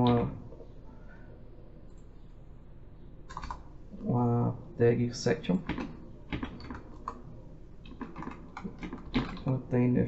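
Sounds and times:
computer keyboard typing: 3.3s - 3.6s, 5.6s - 9.5s.

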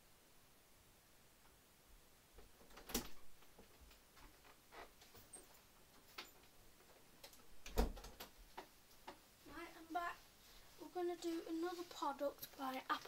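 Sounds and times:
person's voice: 9.4s - 13.0s.

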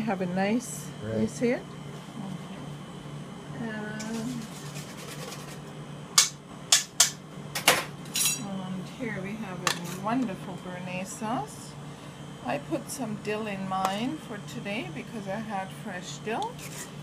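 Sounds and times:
metal spoon clinking on cookware: 8.1s - 8.5s.

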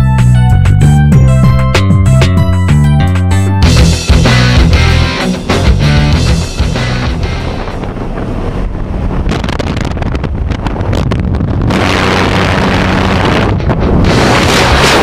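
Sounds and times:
rock music: 0.0s - 7.9s
aircraft noise: 3.1s - 9.3s
wind rushing on microphone: 6.4s - 15.0s.

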